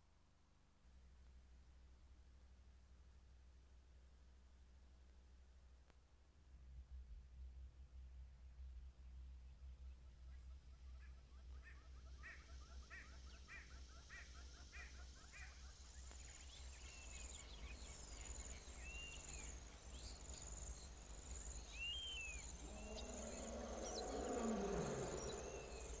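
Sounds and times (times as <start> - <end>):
steady low hum: 0.9 - 26.0
insect-like trilling chirps: 21.3 - 26.0
whistled animal calls: 21.8 - 26.0
low sound falling in pitch: 22.5 - 26.0.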